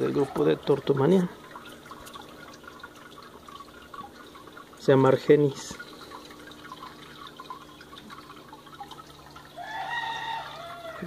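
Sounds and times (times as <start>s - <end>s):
low steady hum: 0.0s - 11.0s
water trickling and dripping: 0.0s - 11.0s
rooster crowing: 9.6s - 11.0s.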